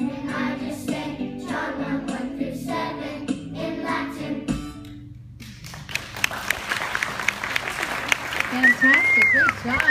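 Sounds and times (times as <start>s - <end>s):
audience applause: 5.7s - 9.9s.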